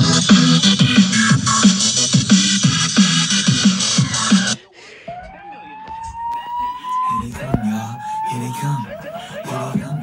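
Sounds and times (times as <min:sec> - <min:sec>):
rising siren-like tone: 0:05.2 - 0:10.0.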